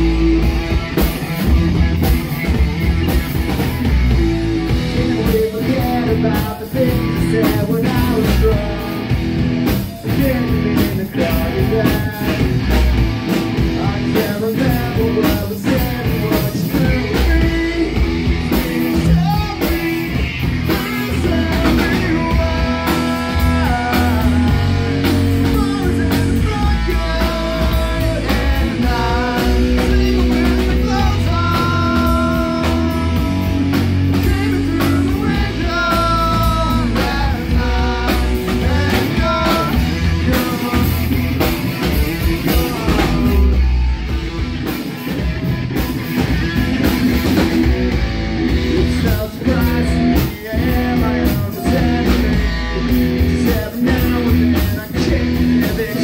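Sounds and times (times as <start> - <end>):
drum kit: 0.0 - 56.0
electric bass: 0.0 - 56.0
electric guitar: 0.0 - 56.0.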